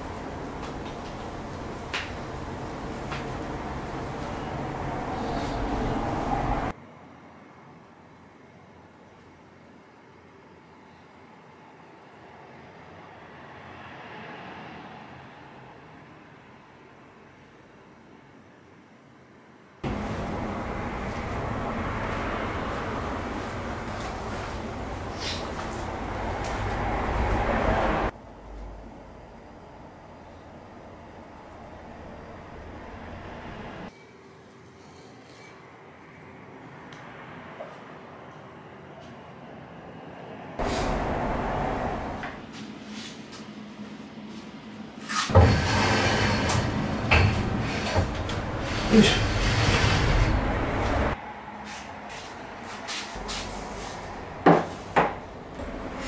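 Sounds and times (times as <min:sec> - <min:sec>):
steady room noise: 0:00.0 - 0:13.8, 0:15.4 - 0:56.0.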